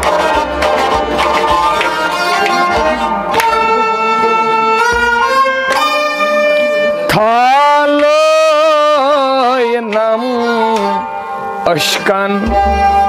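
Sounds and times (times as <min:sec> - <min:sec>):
plucked rabab: 0:00.0 - 0:08.7
person singing long note: 0:00.0 - 0:11.1, 0:12.0 - 0:13.0.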